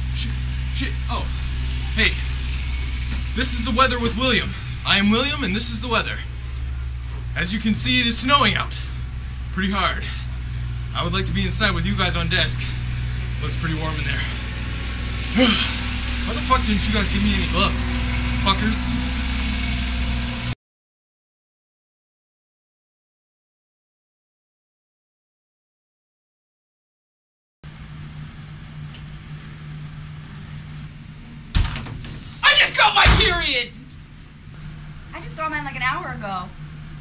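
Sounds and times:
steady low hum: 0.0s - 20.6s, 27.6s - 37.0s
vehicle engine idling: 0.0s - 20.6s.

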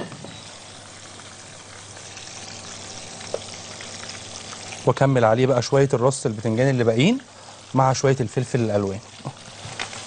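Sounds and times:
frying oil sizzling: 0.0s - 10.0s.

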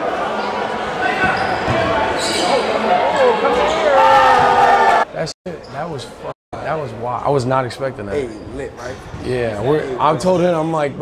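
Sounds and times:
crowd chatter and shouts: 0.0s - 5.3s.

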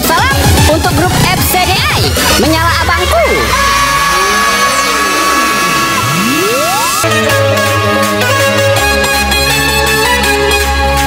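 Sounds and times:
electronic dance music: 0.0s - 10.8s
bass: 0.0s - 11.0s
rising synth sweep: 2.3s - 7.8s
falling pitch sweeps: 2.7s - 7.7s
held high tone: 3.0s - 7.6s.

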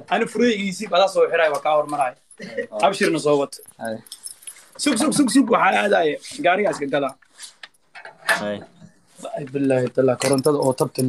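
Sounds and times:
man speaking: 0.0s - 4.1s, 4.8s - 7.2s, 8.4s - 11.0s
faint metallic jingle: 1.2s - 7.3s.

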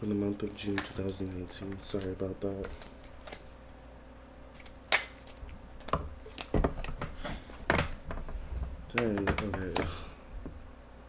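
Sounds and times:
cards being shuffled: 4.5s - 7.6s.

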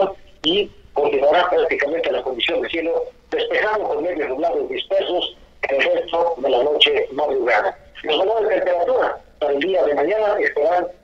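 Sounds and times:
man talking over telephone: 0.0s - 11.0s.

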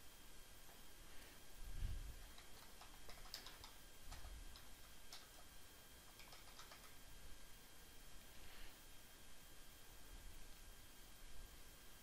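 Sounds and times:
keyboard keys clicking: 2.3s - 5.5s, 6.1s - 7.0s.

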